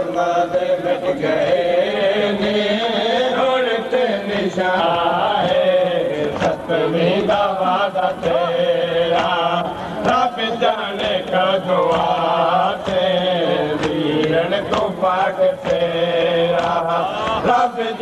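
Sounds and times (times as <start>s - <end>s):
voices chanting a lament: 0.0s - 18.0s.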